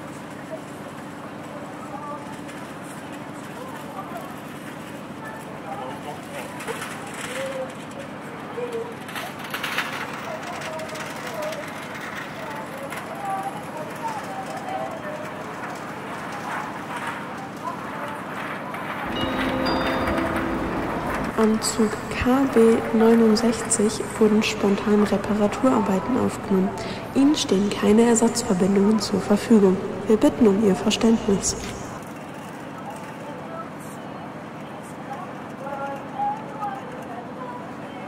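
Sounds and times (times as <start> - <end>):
faint voices murmuring: 0.2 - 38.0
steady pitched tone: 19.1 - 32.0.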